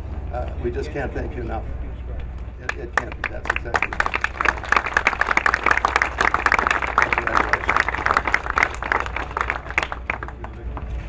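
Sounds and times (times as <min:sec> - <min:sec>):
audience applauding: 0:02.7 - 0:11.0.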